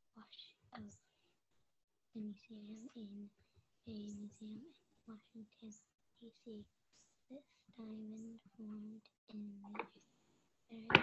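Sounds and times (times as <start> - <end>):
child whispering: 0.2 - 1.2, 2.2 - 10.0.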